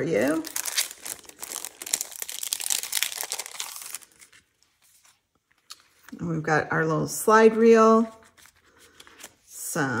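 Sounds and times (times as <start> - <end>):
plastic packet crinkling: 0.2 - 4.6.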